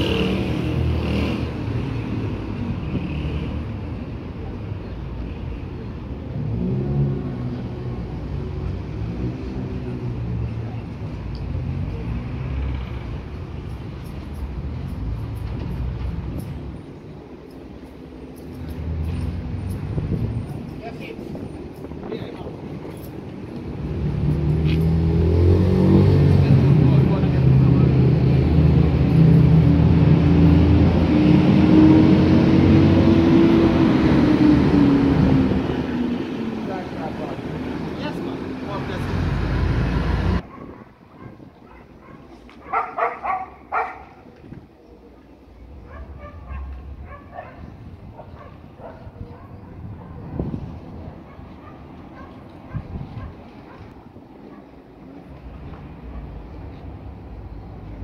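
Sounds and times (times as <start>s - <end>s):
vehicle engine passing by: 0.0s - 4.0s, 6.2s - 10.9s, 23.6s - 40.4s
street noise: 0.0s - 58.0s.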